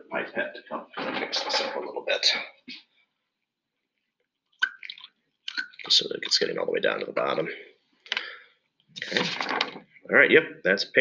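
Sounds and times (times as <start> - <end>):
pipette squishing and bubbling: 3.9 - 7.4.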